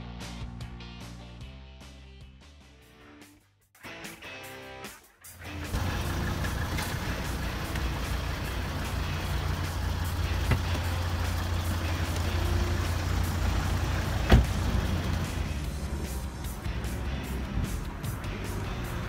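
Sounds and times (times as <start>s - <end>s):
car engine idling: 5.4s - 19.0s
car door shutting: 10.3s - 11.1s, 14.0s - 14.8s.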